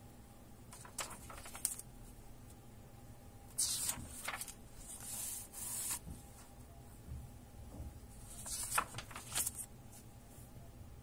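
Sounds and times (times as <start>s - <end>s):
book page turning: 0.8s - 1.8s, 3.6s - 6.0s, 8.3s - 9.7s.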